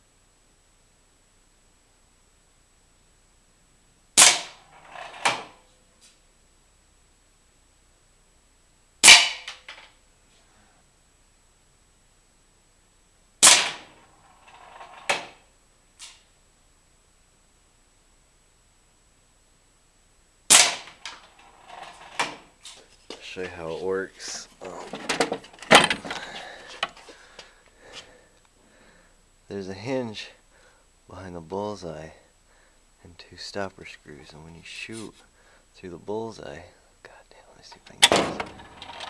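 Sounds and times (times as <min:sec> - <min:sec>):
air gun shot: 0:04.2 - 0:04.6, 0:09.0 - 0:09.6, 0:13.4 - 0:13.9, 0:20.5 - 0:21.0
pellet hitting steel target: 0:04.2 - 0:04.6, 0:09.0 - 0:09.6, 0:13.4 - 0:14.0, 0:20.5 - 0:21.0
target plate rattling: 0:04.2 - 0:05.6, 0:24.6 - 0:26.9, 0:38.0 - 0:39.0
sharp metal knock: 0:09.0 - 0:09.6.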